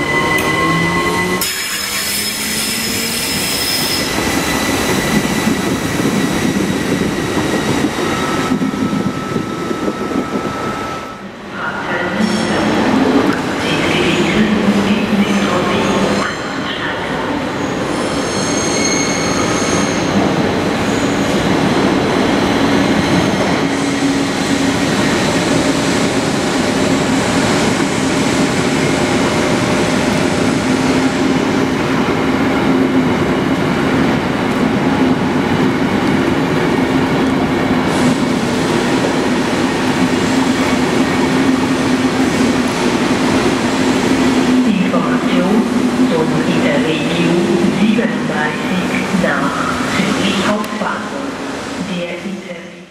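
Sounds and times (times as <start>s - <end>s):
high-pitched wheel squeal: 18.0s - 20.1s.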